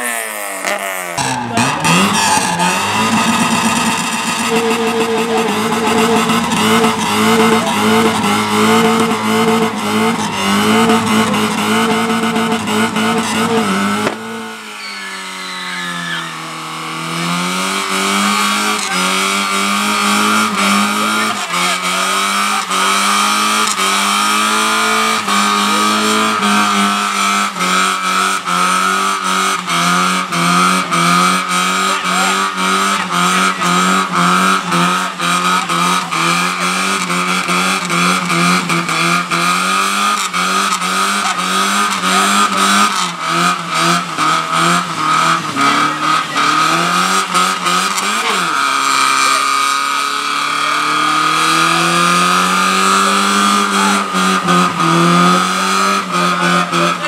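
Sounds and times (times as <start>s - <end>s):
car engine revving in burnout: 0.0s - 57.0s.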